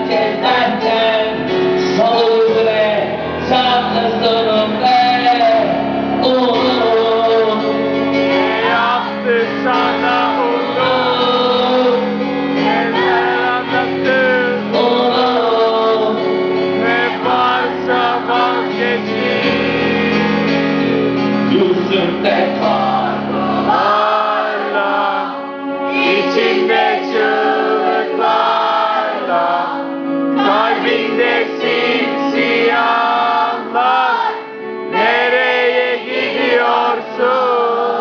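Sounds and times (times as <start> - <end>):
man singing: 0.0 - 20.7, 21.4 - 34.2, 34.9 - 38.0
instrumental accompaniment: 0.0 - 38.0.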